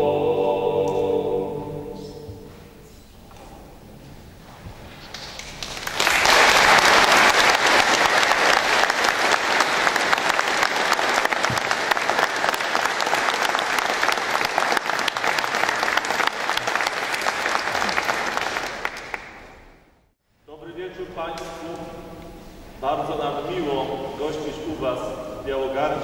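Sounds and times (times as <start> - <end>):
audience applauding: 5.1 - 19.8.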